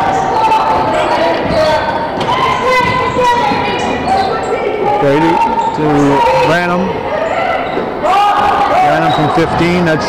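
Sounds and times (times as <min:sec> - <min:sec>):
voices of players and spectators: 0:00.0 - 0:10.0.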